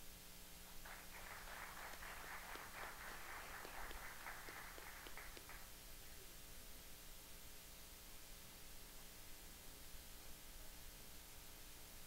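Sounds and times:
faint audience applause: 0:00.6 - 0:05.8.

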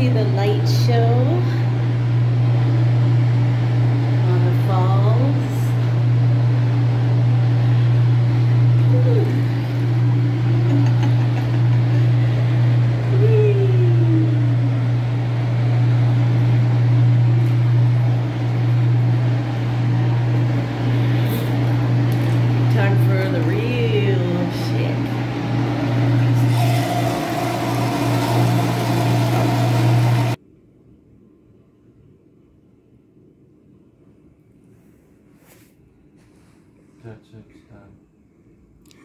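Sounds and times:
jet pump humming: 0:00.0 - 0:30.4
churning water: 0:26.4 - 0:30.4.

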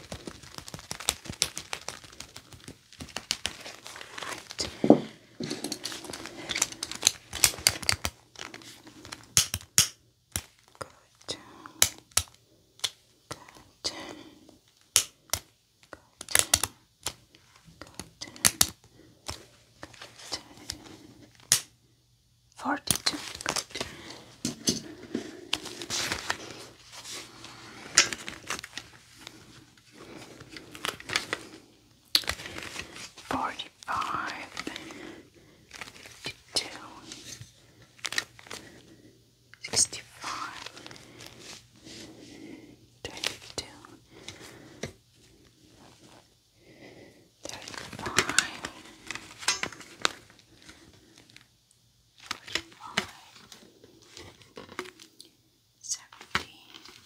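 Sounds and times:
gloves rubbing and crinkling: 0:00.0 - 0:21.9, 0:22.8 - 0:55.5.

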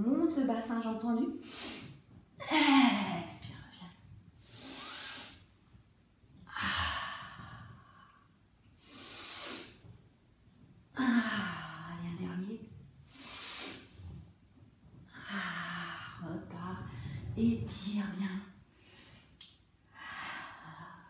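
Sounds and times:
woman breathing hard: 0:18.7 - 0:21.0.

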